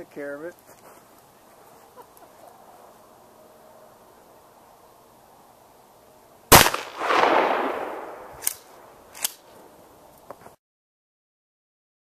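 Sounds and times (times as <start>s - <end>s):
shotgun shot with echo: 6.5s - 8.6s.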